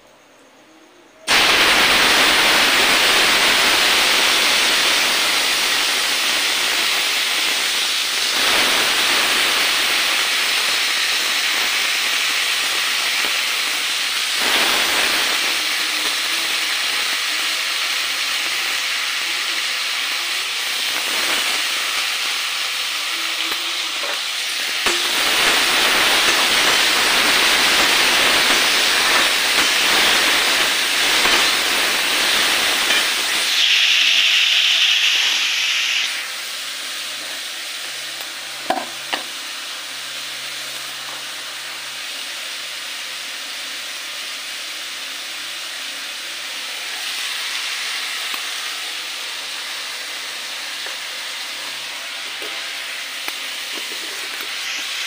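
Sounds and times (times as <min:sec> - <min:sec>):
loud steady hiss: 0:00.0 - 0:55.0.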